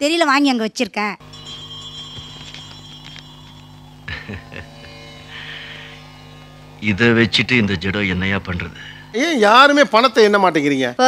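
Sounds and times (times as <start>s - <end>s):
low soundtrack drone: 1.2s - 11.0s.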